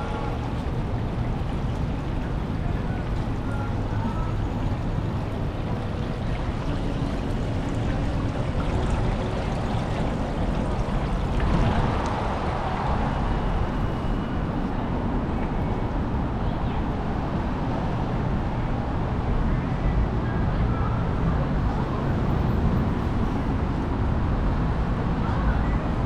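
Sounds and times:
water splashing in fountain: 0:00.0 - 0:13.6.

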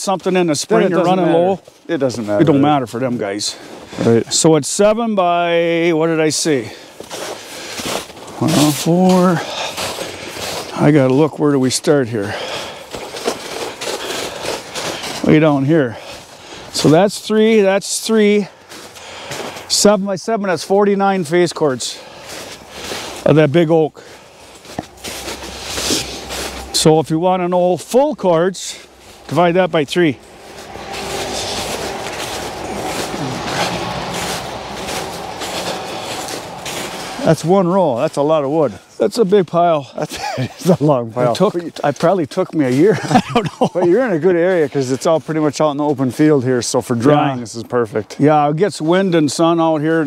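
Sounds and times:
footsteps crunching on snow: 0:00.0 - 0:50.0
steady rushing noise: 0:28.8 - 0:37.5.

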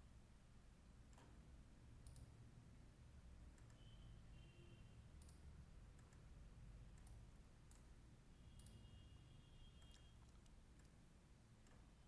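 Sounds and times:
computer mouse clicks: 0:02.0 - 0:02.4, 0:03.5 - 0:03.8, 0:05.2 - 0:07.9, 0:09.8 - 0:11.0, 0:11.6 - 0:11.9.

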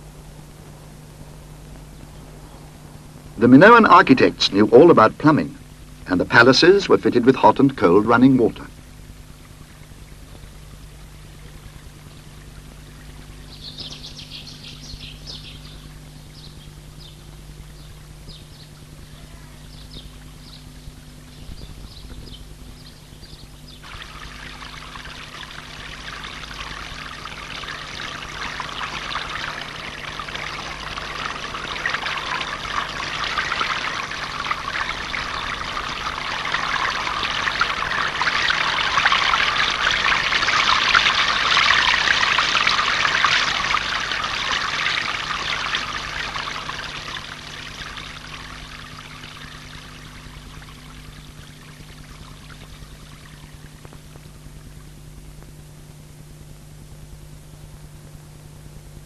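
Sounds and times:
faint steady low hum: 0:00.0 - 0:59.0
water running in stone channel: 0:23.8 - 0:54.8.

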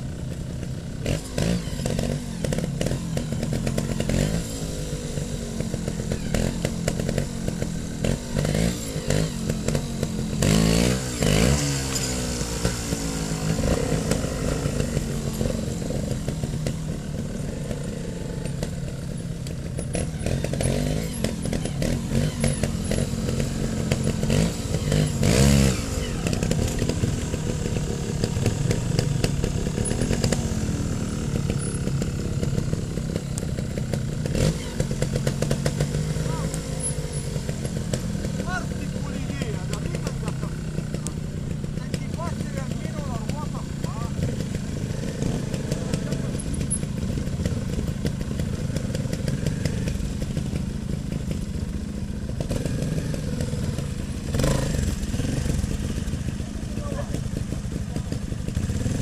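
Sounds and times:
motorcycle engines idling: 0:00.0 - 0:59.0
motorcycle throttle blips: 0:00.0 - 0:59.0.

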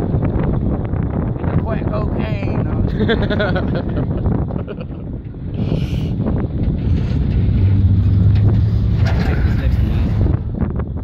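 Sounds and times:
truck engine: 0:00.0 - 0:02.2, 0:02.8 - 0:11.0
road noise: 0:00.0 - 0:11.0
wind rushing over microphone: 0:00.0 - 0:11.0.

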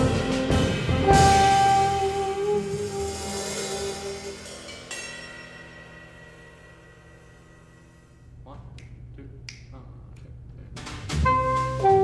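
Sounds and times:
faint low hum: 0:07.3 - 0:11.2
finger snaps: 0:08.7 - 0:10.3.

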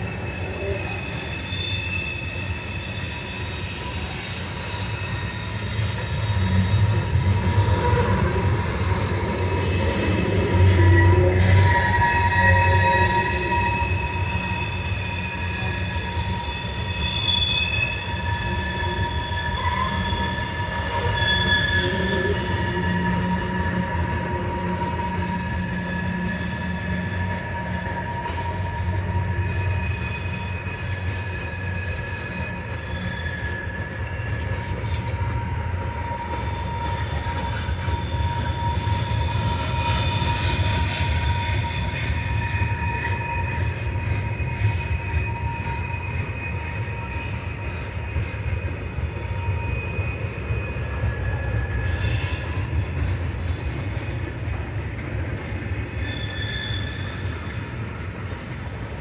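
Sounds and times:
freight train wheels rumbling on rails: 0:00.0 - 0:59.0
train wheels squealing: 0:00.0 - 0:59.0.

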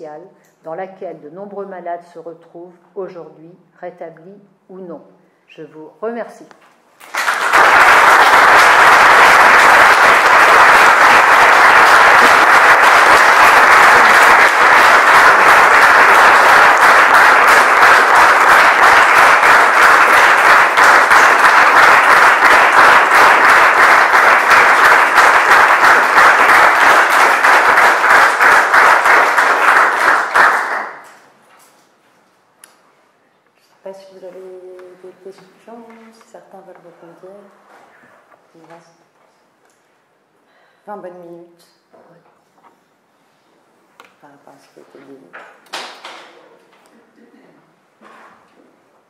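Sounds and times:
audience applauding: 0:07.0 - 0:31.2.

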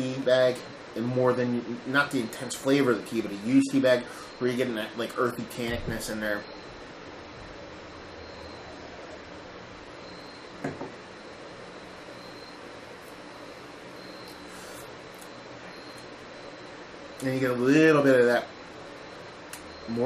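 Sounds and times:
faint high whine: 0:00.0 - 0:20.0
low hum and hiss: 0:00.0 - 0:20.0.

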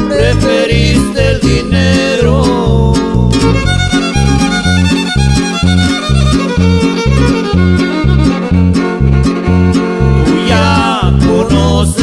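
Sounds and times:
pulsing bass notes: 0:00.0 - 0:12.0
strummed guitars: 0:00.0 - 0:12.0
violin: 0:03.2 - 0:11.4.

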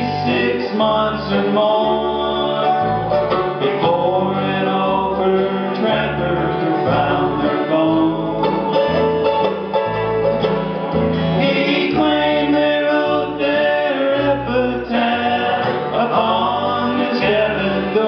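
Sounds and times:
banjo: 0:00.0 - 0:18.0
guitar bass line: 0:00.0 - 0:18.0
mandolin: 0:00.0 - 0:18.0
picked acoustic guitars: 0:00.0 - 0:18.0.

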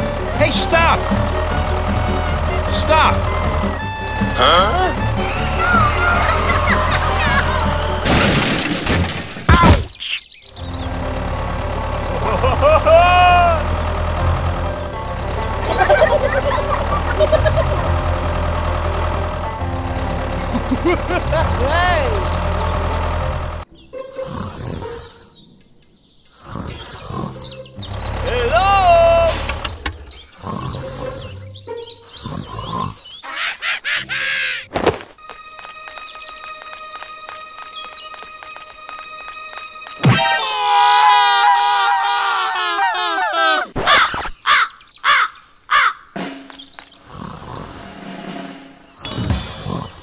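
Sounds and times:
tractor engine drone: 0:00.0 - 0:09.6, 0:10.4 - 0:25.2, 0:27.3 - 0:34.2, 0:35.2 - 0:41.0
squeaky cartoon voices: 0:04.4 - 0:08.0, 0:28.2 - 0:29.5.

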